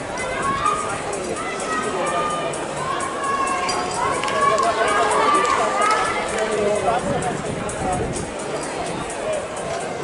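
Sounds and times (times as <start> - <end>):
spectators shouting: 0.0 - 6.6.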